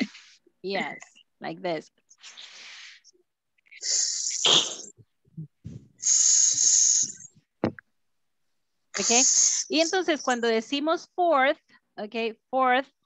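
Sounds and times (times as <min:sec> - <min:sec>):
person hissing a th sound: 0:03.8 - 0:04.9, 0:06.0 - 0:07.3, 0:09.0 - 0:09.8.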